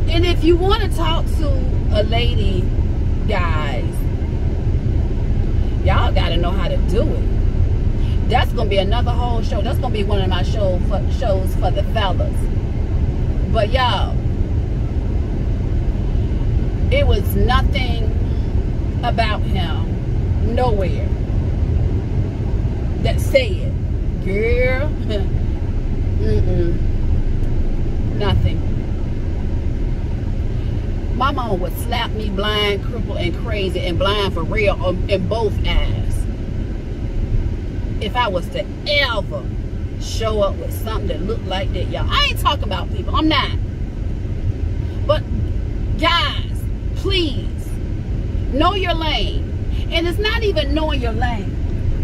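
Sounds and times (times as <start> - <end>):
car cabin road and engine rumble: 0.0 - 52.0.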